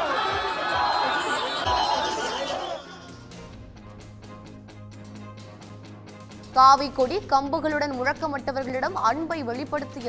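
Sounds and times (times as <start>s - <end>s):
crowd shouting: 0.0s - 3.1s.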